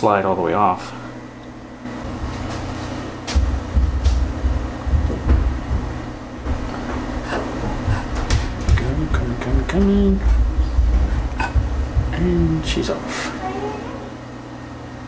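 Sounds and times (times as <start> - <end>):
sharp knocks and clicks: 3.2 - 12.2.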